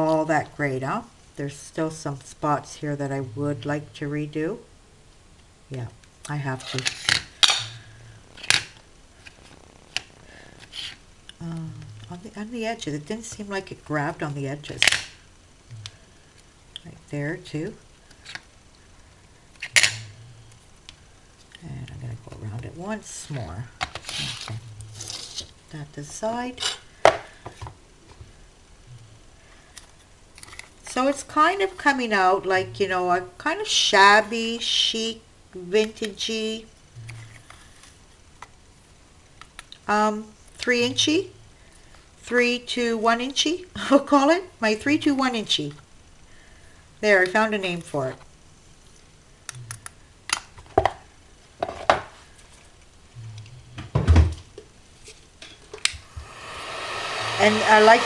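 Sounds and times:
heat gun blower: 56.0s - 58.0s.

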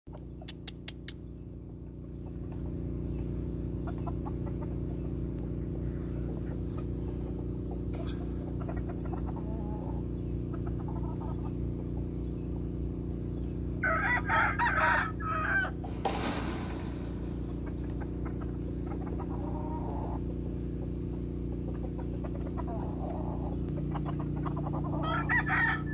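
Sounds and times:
rooster clucking: 0.1s - 1.2s, 3.6s - 12.7s, 13.8s - 25.9s
low hum: 0.1s - 25.9s
sharp clicks: 0.2s - 1.2s
rooster crowing: 13.8s - 15.9s, 24.8s - 25.9s.

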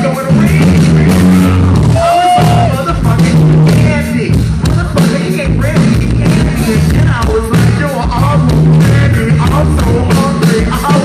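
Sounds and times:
man freestyling into microphone: 0.0s - 7.2s
live band playing groove: 0.0s - 11.0s.

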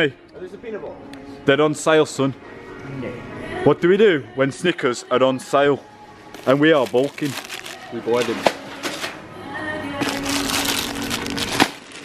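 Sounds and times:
shopping trolley rattling: 10.0s - 12.0s.

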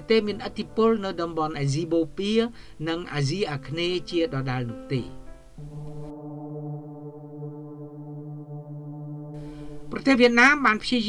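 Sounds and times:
low brass chord: 5.6s - 10.0s.

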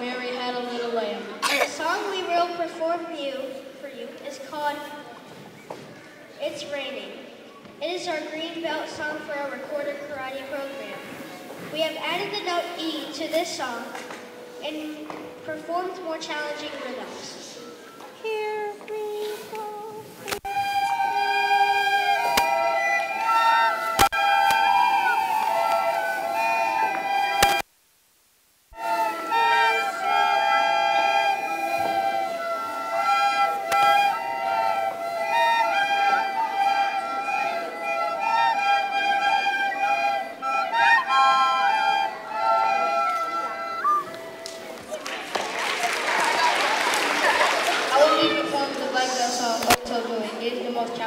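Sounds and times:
children playing recorders: 13.6s - 16.0s, 19.0s - 27.6s, 28.8s - 45.0s.

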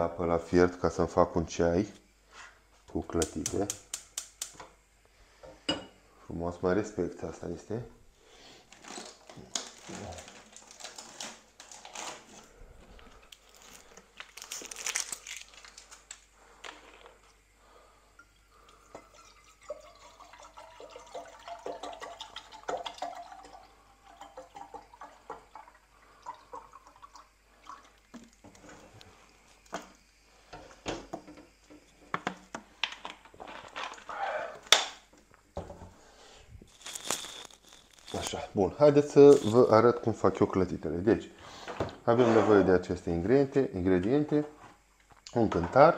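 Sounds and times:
plastic bottle crinkling: 8.7s - 17.1s, 36.6s - 39.7s.

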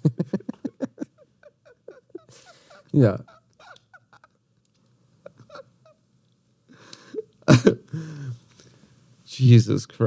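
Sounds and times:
man laughing: 0.0s - 4.4s, 5.2s - 6.0s, 7.0s - 8.0s.

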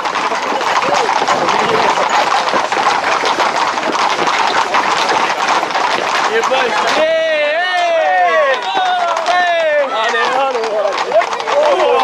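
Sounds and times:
horse hooves clattering on stones: 0.0s - 12.0s
men calling: 4.9s - 12.0s.

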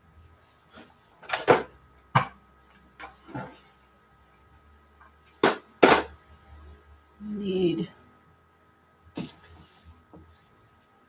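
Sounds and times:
knocks on worktable: 1.5s - 2.4s, 5.4s - 6.1s.

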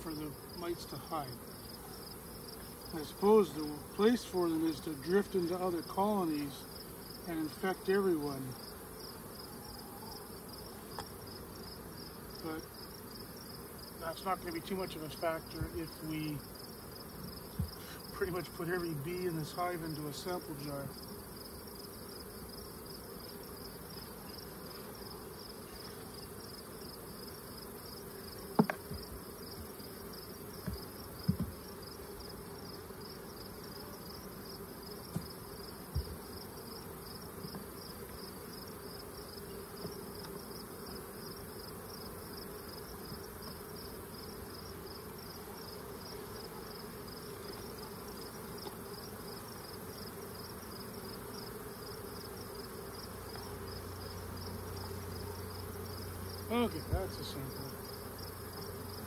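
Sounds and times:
bees humming: 0.0s - 59.0s
sharp knocks: 28.6s - 29.0s, 30.6s - 31.6s.

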